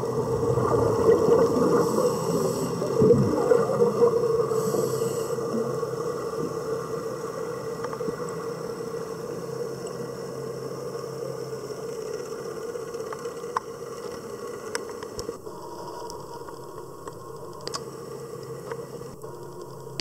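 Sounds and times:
distant boat engine underwater: 0.0 - 20.0.

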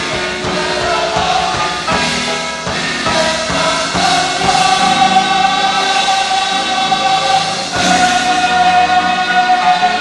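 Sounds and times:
gospel choir singing: 0.0 - 10.0.

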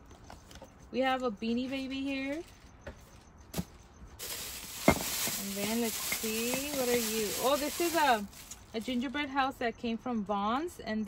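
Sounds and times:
plastic bag rustling: 4.2 - 9.2.

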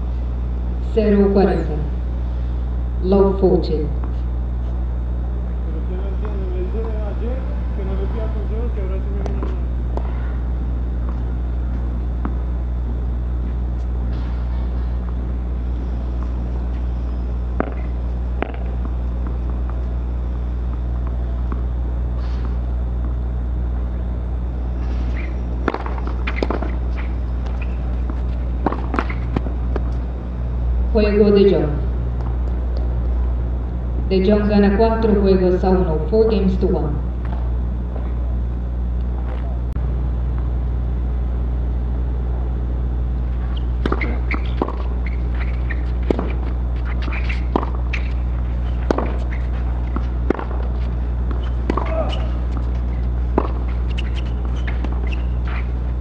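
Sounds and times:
low hum of ambience: 0.0 - 56.0.

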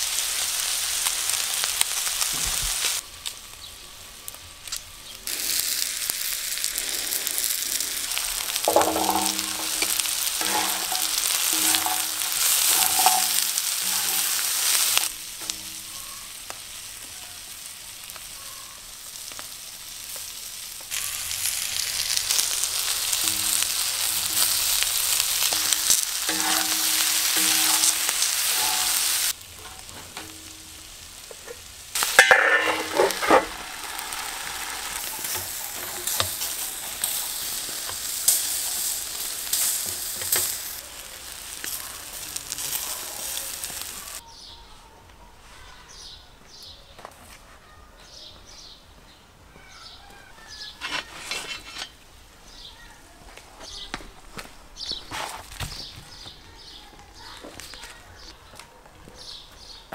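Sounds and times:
food sizzling on a griddle: 0.0 - 44.5, 49.7 - 58.4.

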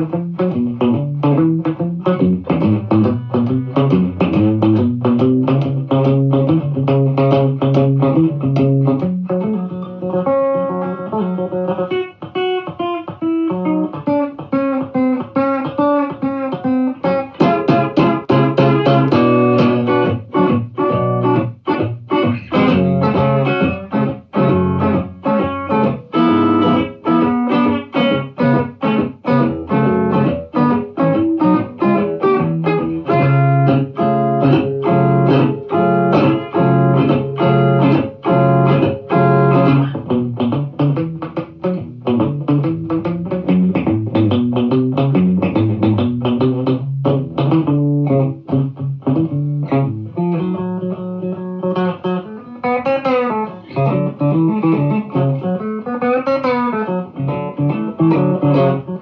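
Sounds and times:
blues electric guitar: 0.0 - 59.0.

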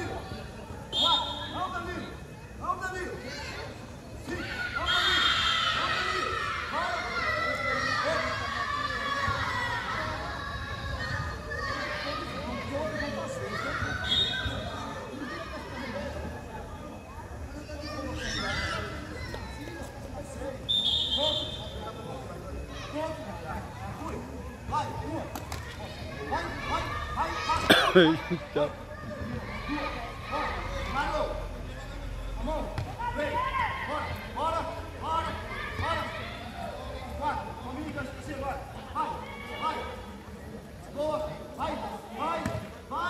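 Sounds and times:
shrill whistle blast: 0.9 - 1.6, 14.0 - 14.6, 20.7 - 21.8.

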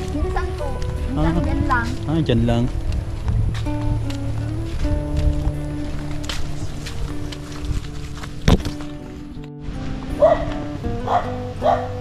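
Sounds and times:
background music with sustained notes: 0.0 - 12.0
dog barking: 10.2 - 12.0.

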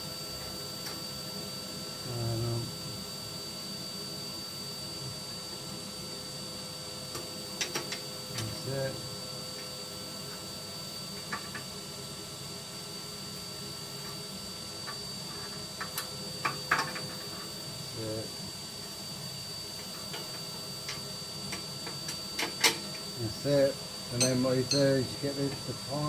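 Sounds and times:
metal clinks and knocks: 24.2 - 25.0.

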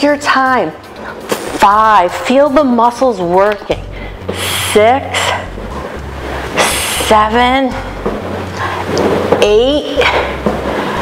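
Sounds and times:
woman speaking: 0.0 - 0.8, 1.6 - 3.9, 4.5 - 5.5, 6.6 - 8.0, 9.4 - 10.2.

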